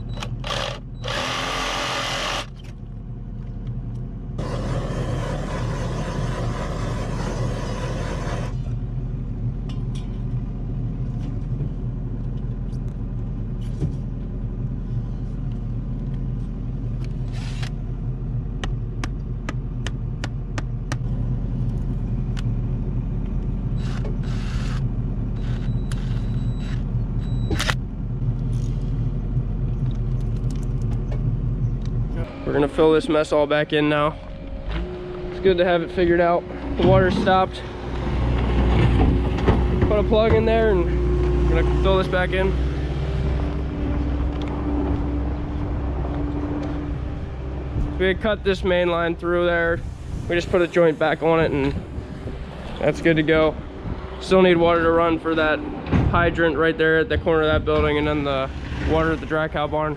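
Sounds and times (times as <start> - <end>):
low engine drone: 0.0 - 59.9
reciprocating saw cutting pipe: 0.4 - 2.5, 4.4 - 8.7.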